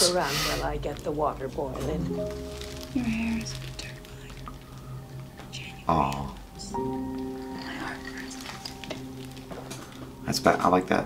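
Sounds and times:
sustained music chord: 0:01.6 - 0:11.0.

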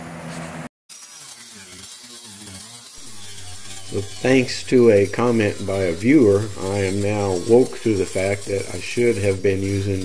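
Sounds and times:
power tool grinding: 0:00.4 - 0:10.0.

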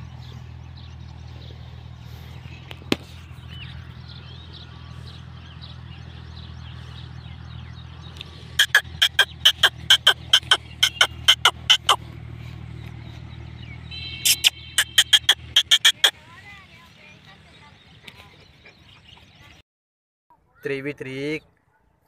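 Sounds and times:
animal giving short sharp high calls: 0:08.6 - 0:12.0, 0:14.2 - 0:16.1.

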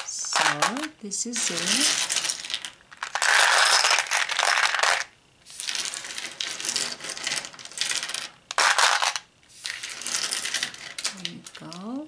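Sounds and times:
plastic toys clattering in a box: 0:00.0 - 0:12.0.

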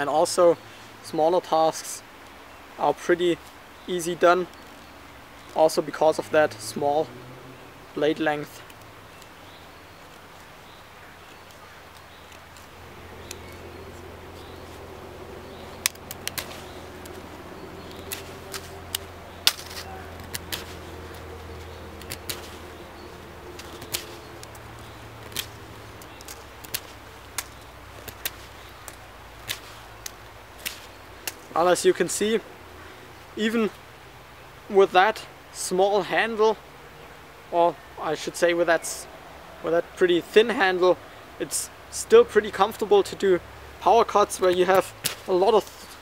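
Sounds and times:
faint low drone: 0:12.7 - 0:26.2
knife snicking through wood: 0:17.9 - 0:22.7, 0:23.5 - 0:31.5.

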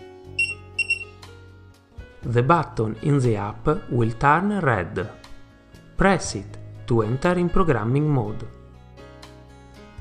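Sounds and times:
soft background music: 0:00.0 - 0:10.0
short high electronic beeps: 0:00.4 - 0:01.2.

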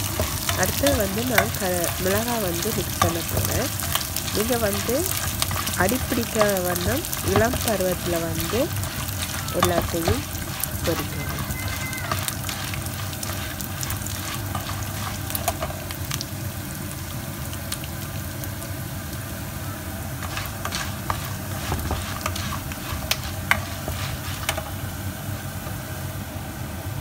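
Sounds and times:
spoon clicking and scraping pan: 0:00.0 - 0:15.8
food sizzling in hot oil: 0:00.0 - 0:26.3.

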